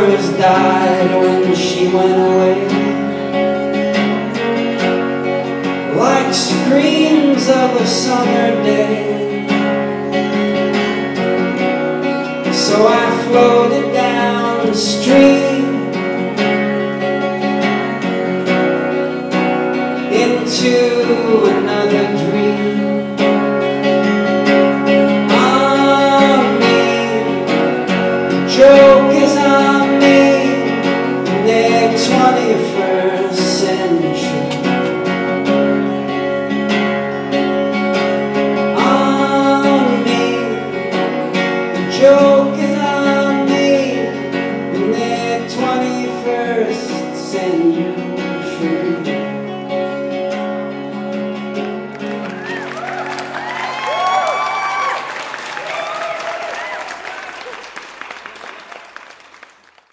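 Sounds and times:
guitar playing folk-rock: 0.0s - 58.4s.

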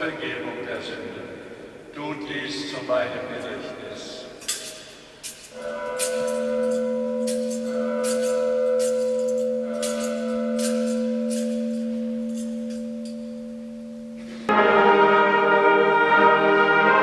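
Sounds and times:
bell ringing: 4.4s - 14.7s
brass ensemble with tuba: 5.6s - 8.7s, 14.4s - 17.0s.

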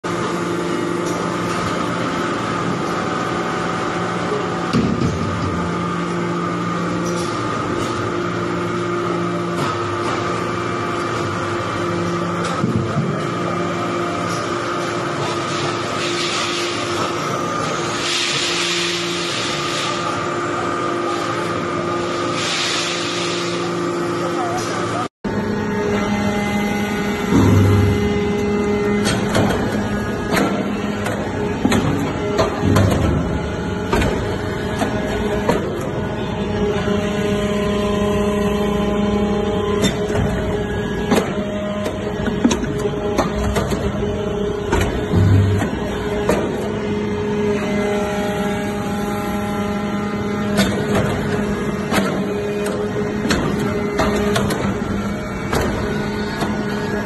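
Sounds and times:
hydraulic press humming: 0.0s - 57.0s.

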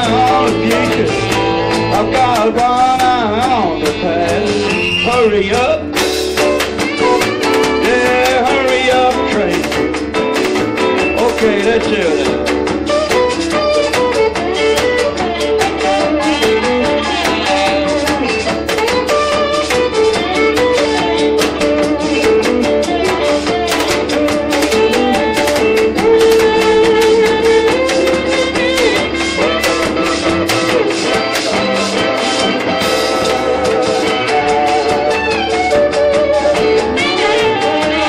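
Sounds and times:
band with drums and bass: 0.0s - 38.0s
electric slide guitar: 0.0s - 38.0s.

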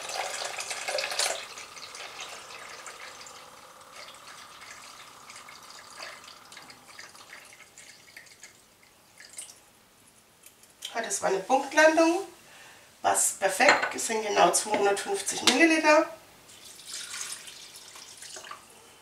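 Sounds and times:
liquid pouring into plastic jug: 0.0s - 9.6s, 16.5s - 18.6s.

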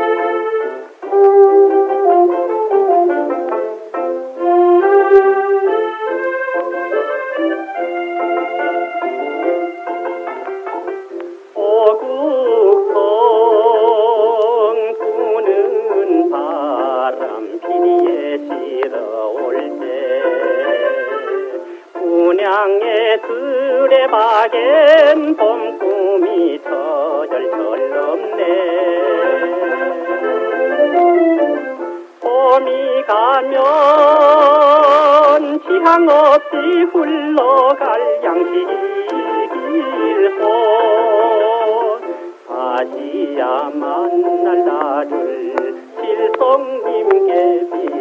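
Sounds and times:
man singing with vibrato: 0.0s - 10.8s, 11.4s - 48.0s
small band playing: 0.0s - 48.0s.

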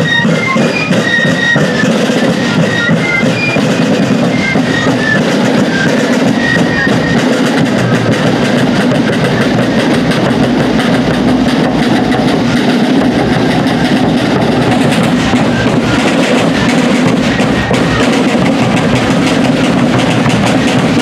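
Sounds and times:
bass drum beats: 0.0s - 21.0s.

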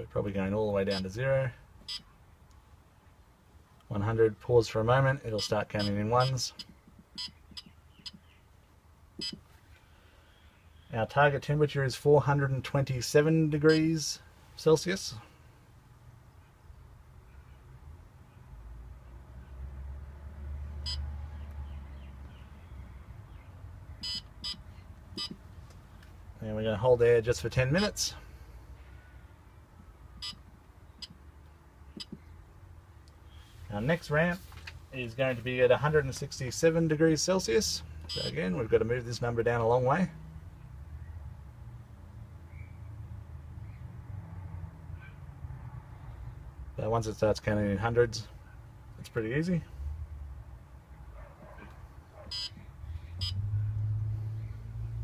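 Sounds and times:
short electronic beeps: 5.4s - 8.2s, 24.0s - 24.6s, 25.2s - 25.4s, 30.2s - 30.4s, 38.1s - 38.4s, 52.3s - 52.6s, 53.2s - 53.4s.

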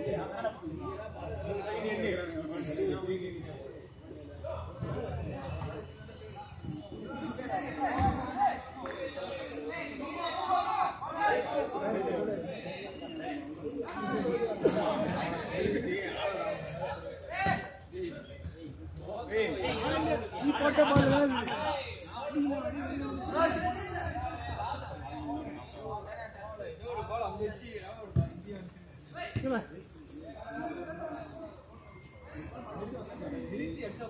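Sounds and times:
men's voices chattering: 0.0s - 34.0s.

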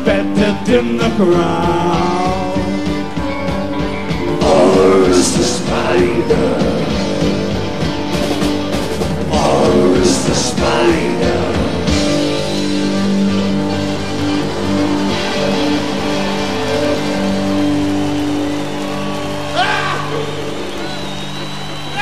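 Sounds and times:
rock band sustained chord: 0.0s - 21.9s.

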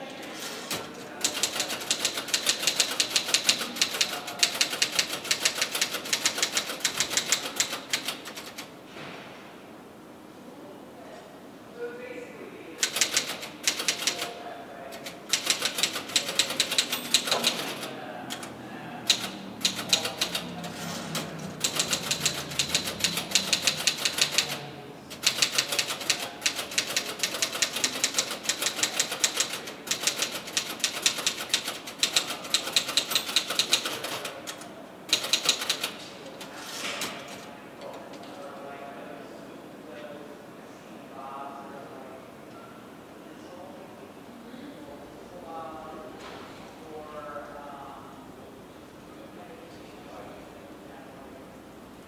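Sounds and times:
fast keyboard typing: 1.2s - 8.7s, 12.8s - 36.0s.

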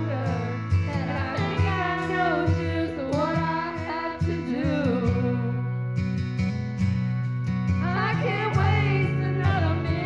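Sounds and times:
guitar music with bass and beat: 0.0s - 10.0s.

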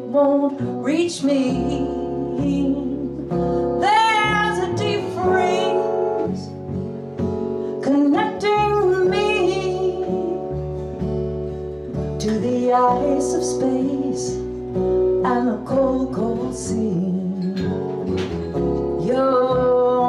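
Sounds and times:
woman singing: 0.0s - 6.6s, 7.6s - 10.7s, 12.0s - 18.1s, 18.9s - 20.0s
acoustic guitar strumming: 0.0s - 20.0s
upright bass plucked: 0.0s - 20.0s.

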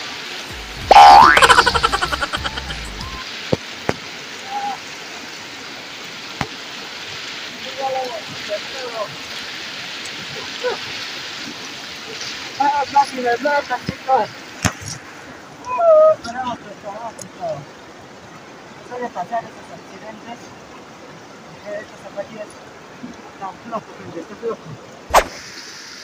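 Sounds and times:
fast river rushing: 0.0s - 26.0s
cartoon boing effect: 0.8s - 3.0s.

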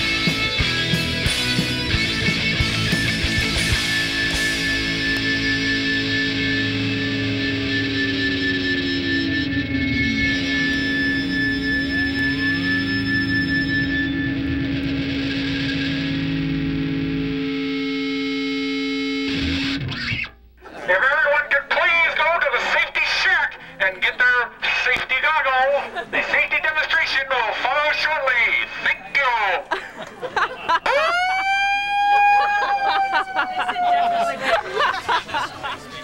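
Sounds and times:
distorted electric guitar: 0.0s - 20.6s.

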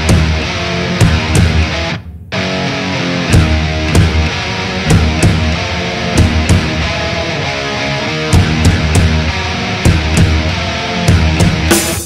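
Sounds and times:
drum and cymbal hits: 0.0s - 2.6s, 3.3s - 7.0s, 8.3s - 12.0s
distorted electric guitar riff: 0.0s - 12.0s
heavy metal band playing: 0.0s - 12.0s.

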